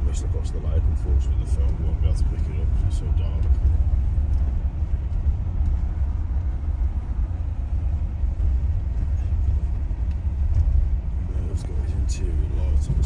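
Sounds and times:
van engine and road rumble: 0:00.0 - 0:13.0.

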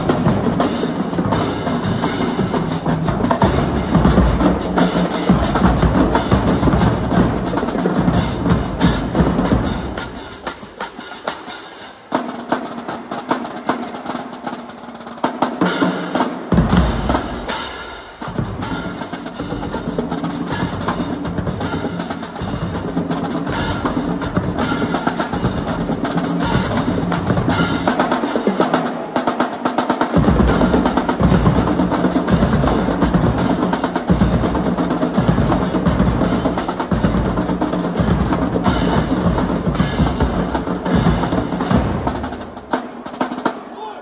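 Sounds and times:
bass drums: 0:00.0 - 0:10.8, 0:16.5 - 0:28.4, 0:30.2 - 0:42.7
snare drums: 0:00.0 - 0:44.0
tenor drums: 0:00.0 - 0:44.0.

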